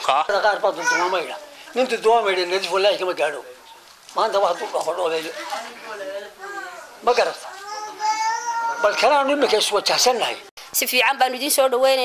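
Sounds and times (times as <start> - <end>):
man talking: 0.0 - 3.6, 8.7 - 10.5.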